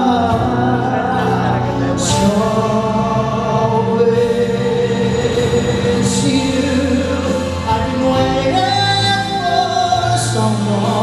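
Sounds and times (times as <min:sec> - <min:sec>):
backing music: 0:00.0 - 0:11.0
man singing live: 0:00.0 - 0:11.0.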